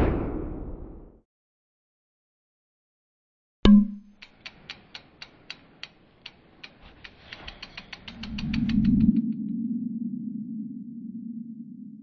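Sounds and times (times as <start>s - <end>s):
sharp ticks speeding up: 3.9s - 9.4s.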